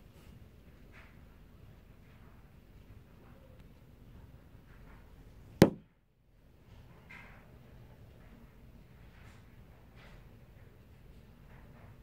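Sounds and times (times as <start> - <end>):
sharp knock: 5.6 - 5.8.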